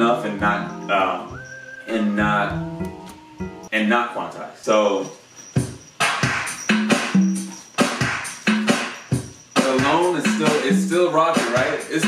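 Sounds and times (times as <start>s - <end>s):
bass line: 0.0s - 3.7s
drum machine beat: 0.3s - 3.7s, 5.6s - 12.0s.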